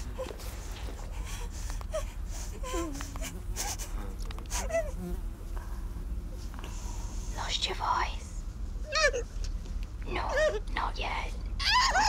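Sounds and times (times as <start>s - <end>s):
muffled whimpering and moaning: 0.0s - 7.0s, 8.8s - 9.5s, 10.1s - 12.0s.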